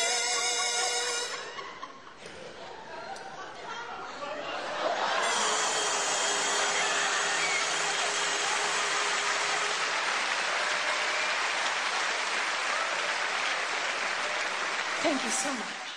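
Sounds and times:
audience applauding: 4.3s - 15.9s.

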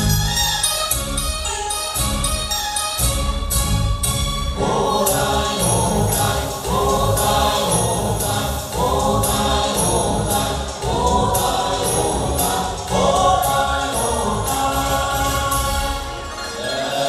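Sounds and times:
instrumental accompaniment with beat: 0.0s - 17.0s
group singing: 4.6s - 17.0s.

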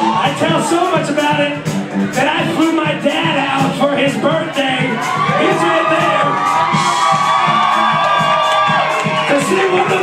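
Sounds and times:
crowd cheering and whooping: 0.0s - 1.0s, 4.6s - 10.0s
live band playing loudly: 0.0s - 10.0s.

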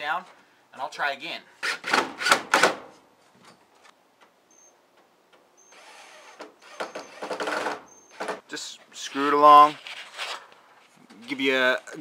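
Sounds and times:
cordless drill boring into wood: 5.6s - 8.4s.

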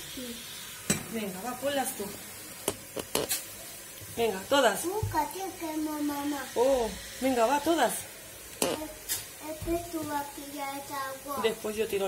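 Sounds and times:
meat and vegetables sizzling: 0.0s - 12.0s.

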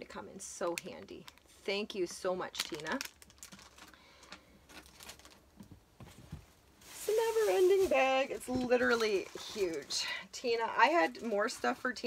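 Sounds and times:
faint clicks of small items: 2.6s - 5.7s.

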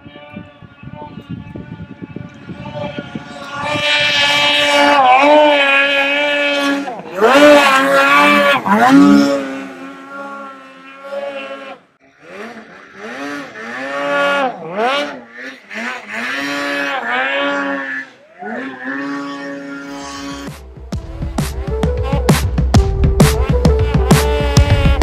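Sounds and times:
snowmobile engine revving: 0.0s - 25.0s
music with deep bass: 20.4s - 25.0s.

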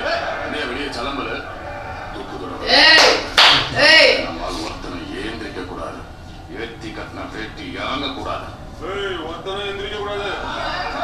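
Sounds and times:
film dialogue from laptop: 0.0s - 11.0s.

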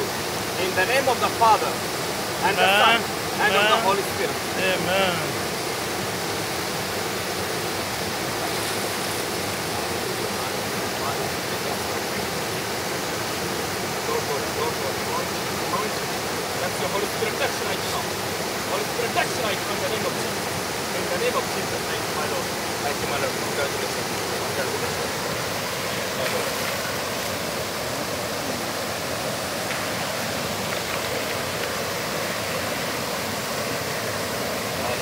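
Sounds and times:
waterfall pouring into pool: 0.0s - 35.0s.

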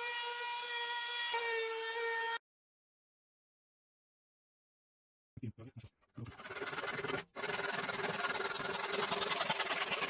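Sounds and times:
electric jigsaw cutting plywood: 6.4s - 10.0s.

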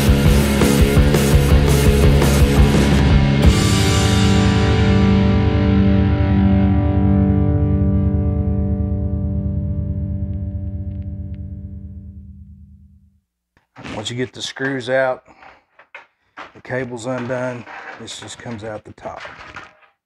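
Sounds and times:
distorted electric guitar chord ringing: 2.9s - 12.9s.

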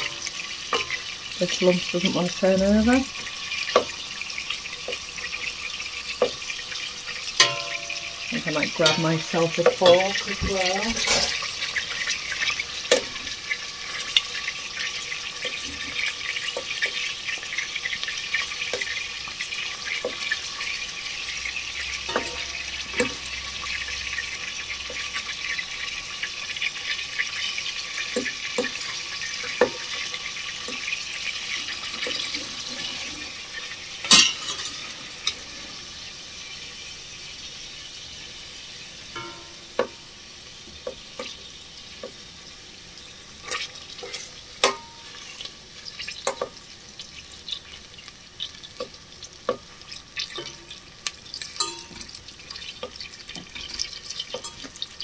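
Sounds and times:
wooden spoon knocking and scraping pot: 0.0s - 4.1s, 6.1s - 6.6s, 7.4s - 14.2s, 22.1s - 23.3s
beef sizzling in hot oil: 0.0s - 55.0s.

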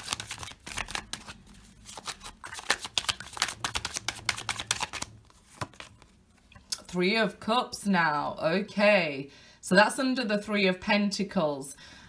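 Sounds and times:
cards being shuffled by hand: 0.0s - 6.5s.

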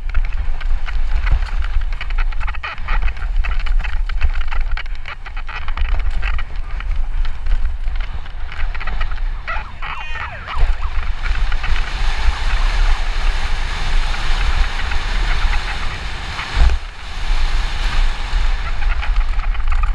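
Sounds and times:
bike rattling: 0.0s - 19.9s
tyres rolling on dirt and gravel: 0.0s - 19.9s
wind buffeting microphone: 0.0s - 19.9s.

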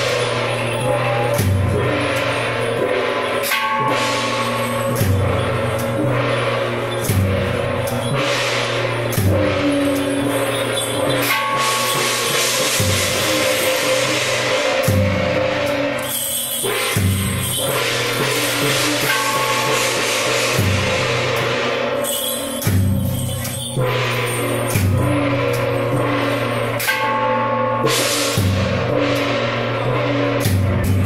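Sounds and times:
clashing cymbals: 0.0s - 31.0s
ringing gongs: 0.0s - 31.0s.

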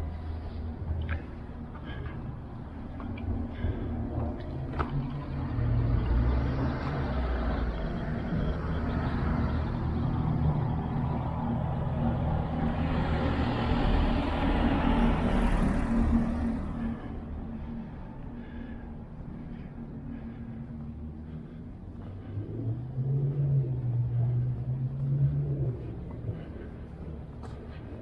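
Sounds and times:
low engine rumble: 0.0s - 28.0s.

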